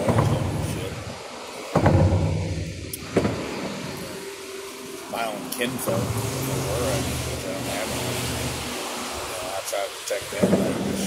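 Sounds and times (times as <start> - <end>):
thunder rumbling: 0.0 - 9.6.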